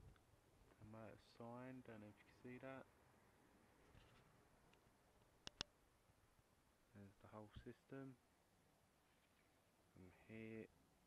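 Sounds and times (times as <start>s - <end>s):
sharp clicks: 5.4s - 5.7s.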